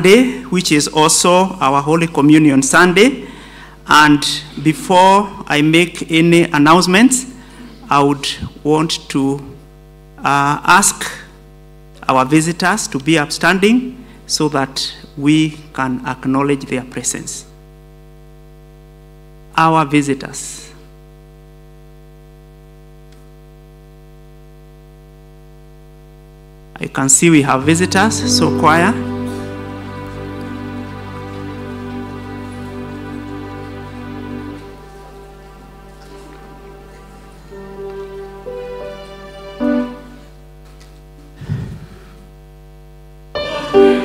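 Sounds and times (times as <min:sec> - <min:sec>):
electrical mains hum: 0:00.0 - 0:44.0
keyboard music: 0:27.6 - 0:40.4, 0:43.3 - 0:44.0.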